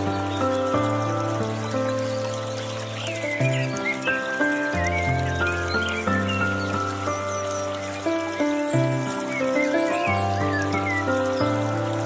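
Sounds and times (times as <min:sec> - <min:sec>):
gentle piano music: 0:00.0 - 0:12.0
trickling water fountain: 0:00.0 - 0:12.0
bird chirps: 0:01.6 - 0:12.0.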